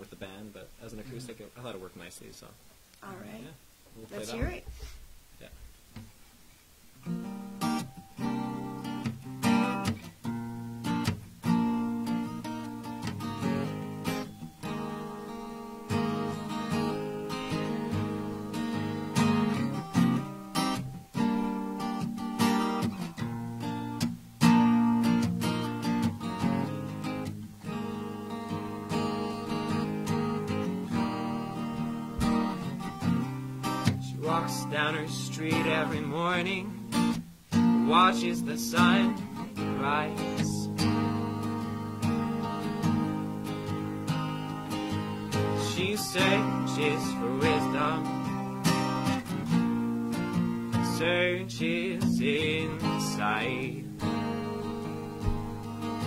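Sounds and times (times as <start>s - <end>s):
acoustic guitar strummed and picked: 4.1s - 4.6s, 6.9s - 56.0s
person singing: 34.0s - 36.9s, 37.7s - 41.2s, 45.4s - 48.6s, 50.8s - 55.2s.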